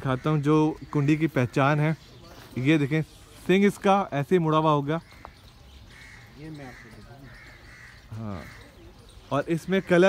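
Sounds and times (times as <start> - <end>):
crow cawing: 0.0 - 2.0, 5.0 - 10.0.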